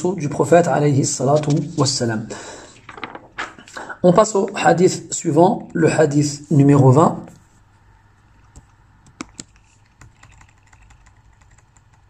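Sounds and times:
computer keys clicking: 8.5 - 12.0.

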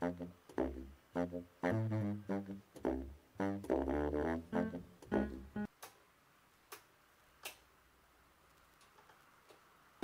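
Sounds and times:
music from amplifier: 4.4 - 5.7.

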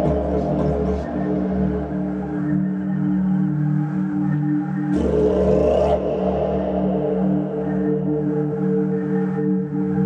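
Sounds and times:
ambient drone music: 0.0 - 10.0.

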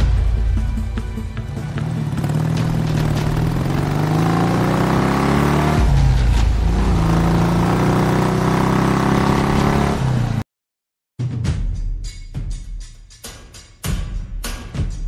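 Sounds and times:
motorcycle engine revving: 1.4 - 10.4.

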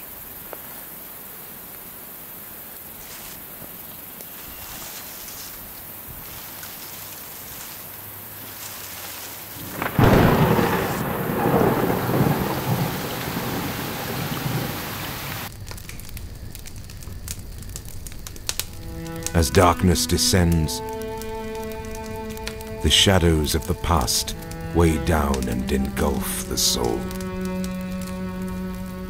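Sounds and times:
steady rain: 0.0 - 29.0
wood fire crackling: 6.1 - 29.0
thunderclap rumbling: 9.6 - 15.5, 17.1 - 29.0.

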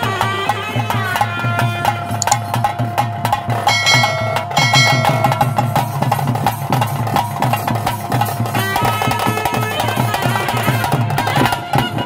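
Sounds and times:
fast steady drumming: 3.1 - 9.1
held high notes: 3.7 - 6.0.

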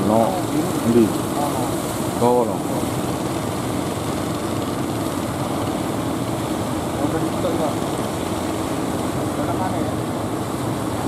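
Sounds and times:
boat engine droning: 0.0 - 11.0
surf: 0.0 - 11.0.

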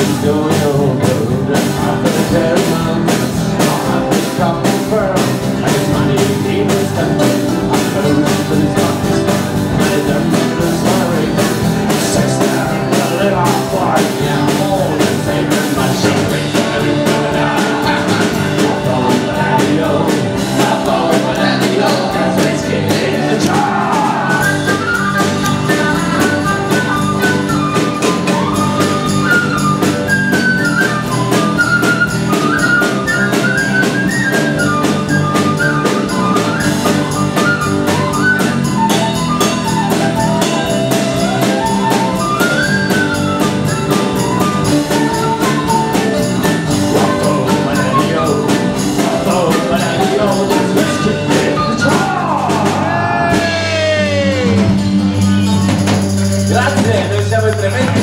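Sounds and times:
flute melody: 0.0 - 55.7
folk band playing: 0.0 - 58.0.

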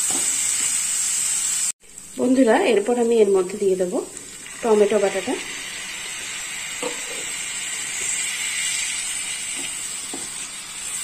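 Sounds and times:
paste sizzling in hot oil: 0.0 - 11.0.

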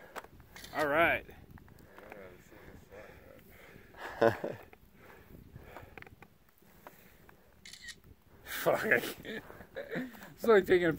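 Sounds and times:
camera shutter: 0.6 - 0.9, 7.6 - 8.0.

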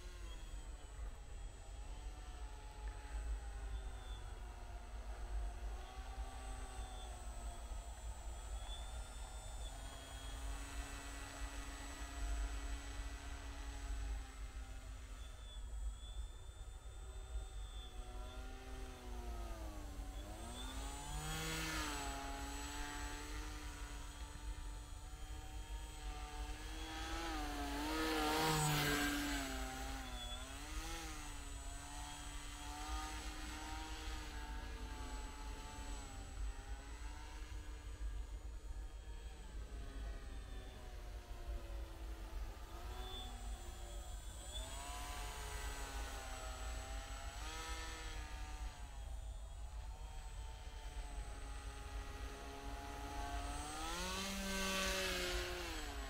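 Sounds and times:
model aircraft motor buzzing whine: 0.0 - 56.0.

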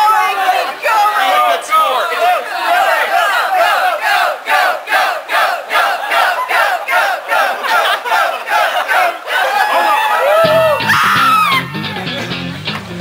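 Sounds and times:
crowd chanting and yelling: 0.0 - 13.0.

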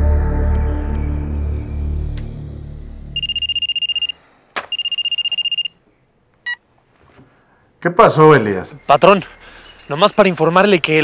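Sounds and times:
background music: 0.0 - 4.1
short electronic beep: 3.2 - 5.7
mobile phone ringing: 3.2 - 5.8.

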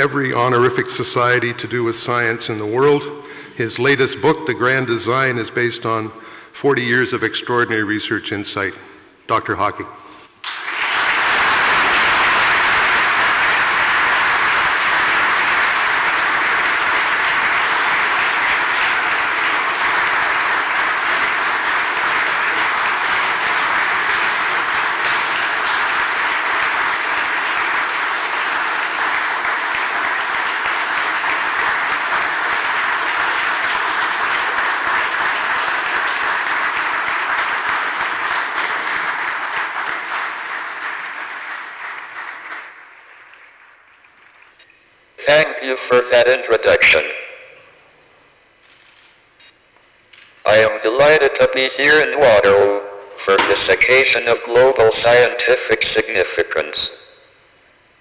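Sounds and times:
large audience applauding: 10.4 - 44.7.

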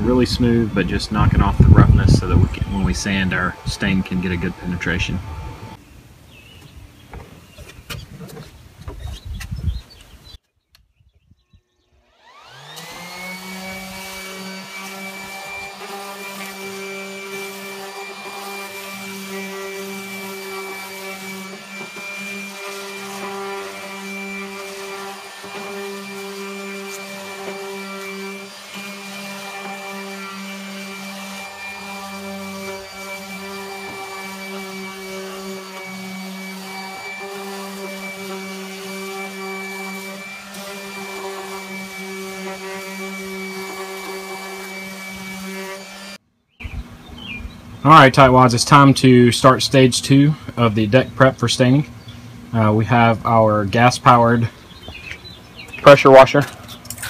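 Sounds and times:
orbital sander on wood: 0.0 - 5.8, 11.9 - 46.2.

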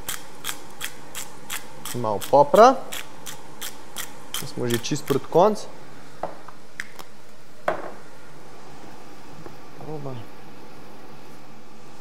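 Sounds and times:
steady buzzing hum: 0.0 - 12.0
low hum of a voice: 9.3 - 10.4.

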